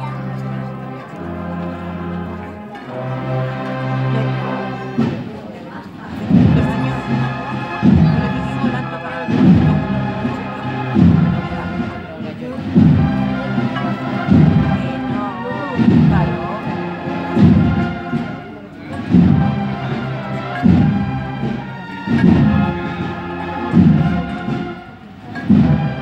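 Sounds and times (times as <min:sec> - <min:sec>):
band playing slow march: 0:00.0 - 0:26.0
heavy bass drum beat: 0:06.2 - 0:11.9, 0:12.6 - 0:18.2, 0:19.0 - 0:24.8.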